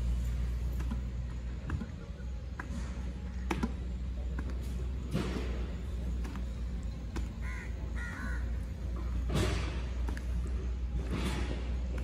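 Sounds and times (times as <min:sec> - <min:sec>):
bird cawing: 0:07.4 - 0:08.8.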